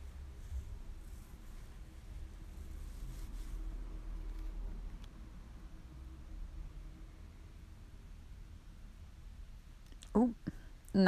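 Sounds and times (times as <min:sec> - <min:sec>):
soft rustle: 0:00.0 - 0:05.2.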